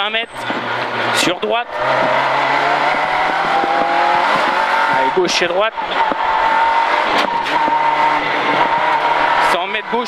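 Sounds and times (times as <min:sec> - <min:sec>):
car engine at high revs: 0:00.0 - 0:10.0.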